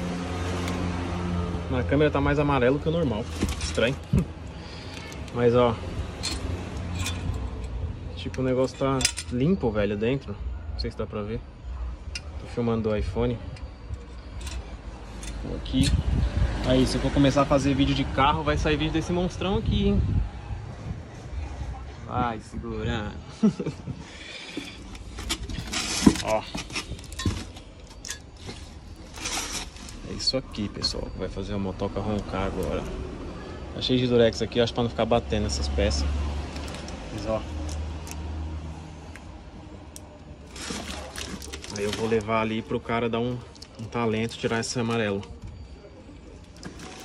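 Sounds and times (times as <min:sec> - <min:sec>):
plastic wrapping crinkling: 0:40.5 - 0:42.6.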